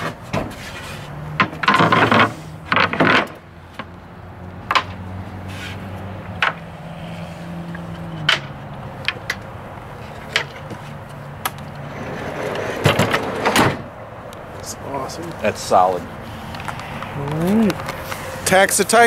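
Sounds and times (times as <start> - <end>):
wooden panels sliding: 0.0 - 3.4.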